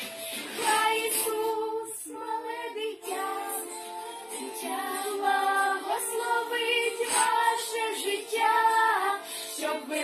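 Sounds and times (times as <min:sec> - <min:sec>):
girls singing in unison: 0:00.6 - 0:10.0.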